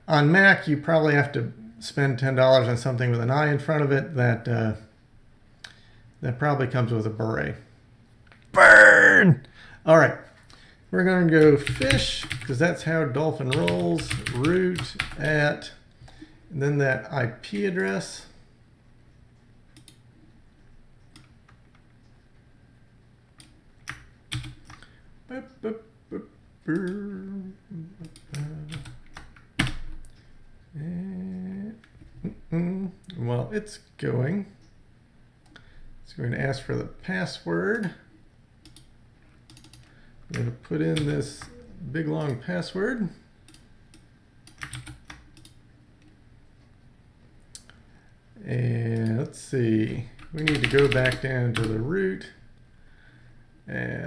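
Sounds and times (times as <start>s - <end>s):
keyboard keys clicking: 44.5s - 45.5s.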